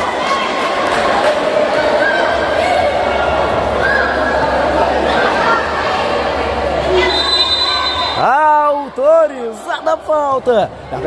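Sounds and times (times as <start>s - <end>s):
crowd noise in a hall: 0.0s - 11.0s
referee's whistle blast: 7.0s - 8.3s.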